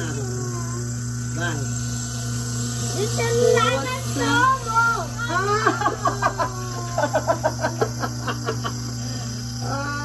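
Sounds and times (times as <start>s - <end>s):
electric juicer motor hum: 0.0s - 10.0s.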